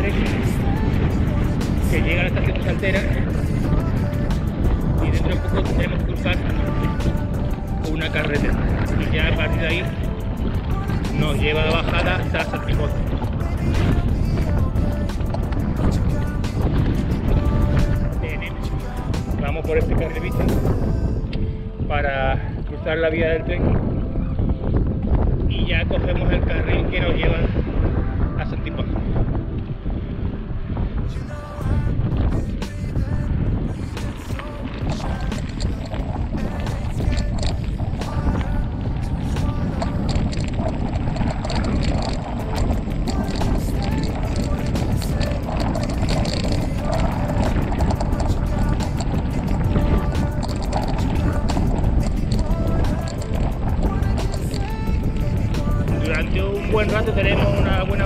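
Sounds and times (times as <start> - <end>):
music playing: 0.0 - 58.0
wind buffeting microphone: 0.0 - 58.0.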